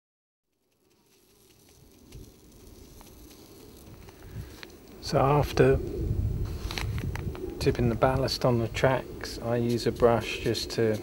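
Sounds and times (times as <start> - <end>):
insect buzzing: 0.5 - 11.0
faint ticks: 0.6 - 5.0.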